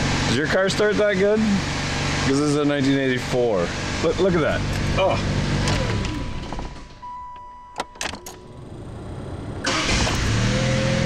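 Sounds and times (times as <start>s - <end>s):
car engine running: 0.0s - 7.1s, 7.8s - 11.0s.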